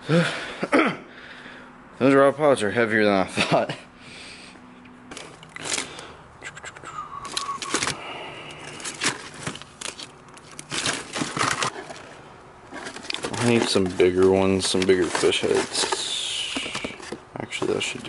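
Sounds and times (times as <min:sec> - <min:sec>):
plastic packs crinkling: 0:05.1 - 0:06.1, 0:07.2 - 0:18.0
fishing lures rustling and clicking: 0:05.1 - 0:17.8.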